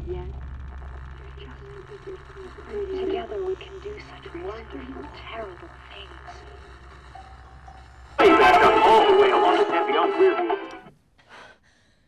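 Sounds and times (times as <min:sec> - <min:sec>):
radio hum: 0:00.0 - 0:10.8.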